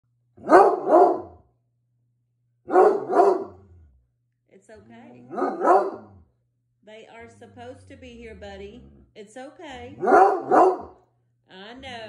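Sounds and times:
dog barking: 0:00.4 - 0:01.4, 0:02.7 - 0:03.6, 0:05.3 - 0:06.2, 0:10.0 - 0:11.0.

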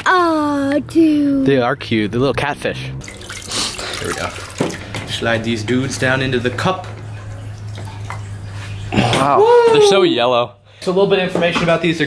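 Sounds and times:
steady low hum: 0:00.0 - 0:10.8
water dripping and trickling: 0:03.0 - 0:09.0.

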